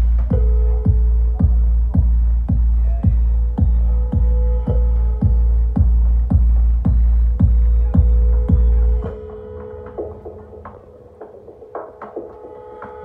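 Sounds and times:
heavy kick drum: 0:00.0 - 0:09.3
synth drone: 0:00.0 - 0:13.0.

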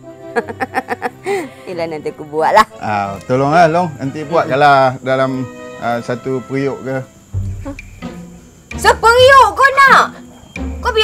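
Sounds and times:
insect drone: 0:00.0 - 0:11.0
soft music with low bass: 0:02.0 - 0:09.6.

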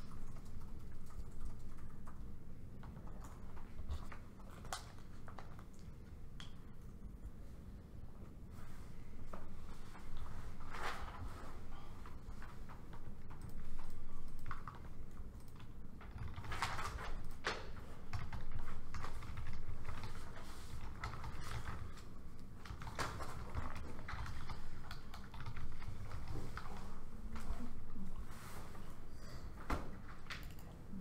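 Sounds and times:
low room hum: 0:00.0 - 0:31.0.

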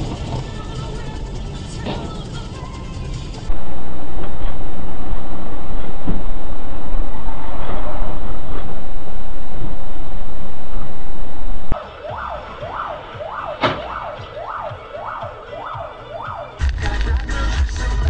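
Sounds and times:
loud steady rumbling: 0:00.0 - 0:16.0
siren sweeping up and down: 0:03.5 - 0:16.6
music with heavy beat: 0:11.8 - 0:18.0
sharp knock: 0:13.6 - 0:13.9.

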